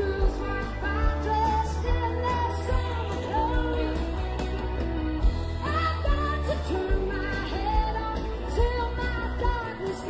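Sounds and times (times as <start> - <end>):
rock band music: 0.0 - 10.0.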